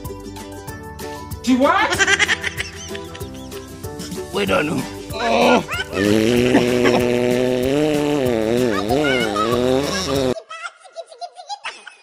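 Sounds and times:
high-pitched laughter: 1.9 - 3.6, 5.4 - 7.2, 8.6 - 12.0
loud wavering voice: 5.1 - 7.2, 8.7 - 10.1.

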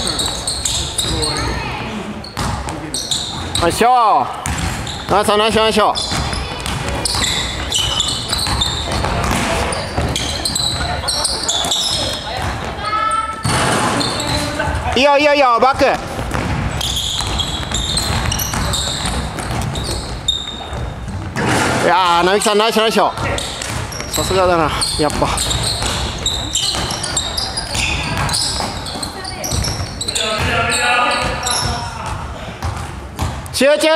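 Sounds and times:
sneakers squeaking: 0.0 - 33.6
basketball bouncing: 2.3 - 12.8, 15.7 - 22.4, 23.0 - 33.5.

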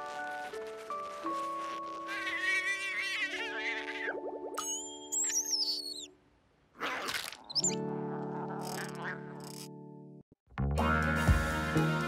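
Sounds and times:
cartoon creature warbling squeak: 2.1 - 4.2, 6.8 - 9.3.

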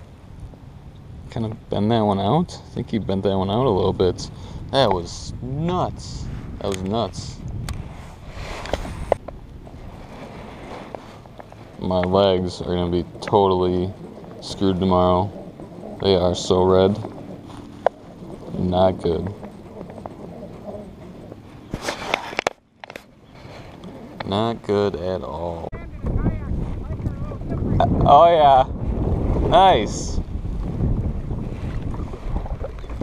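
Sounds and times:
low steady rumble: 0.0 - 21.8, 22.6 - 33.0.

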